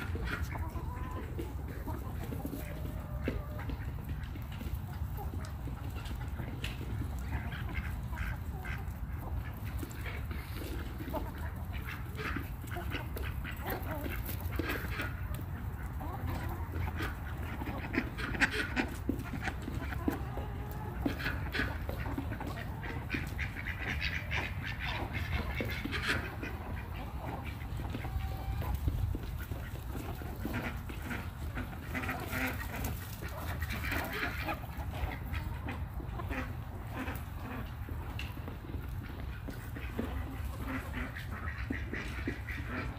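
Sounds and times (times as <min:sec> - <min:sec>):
ducks quacking: 0:00.0 - 0:42.9
hens calling: 0:00.0 - 0:42.9.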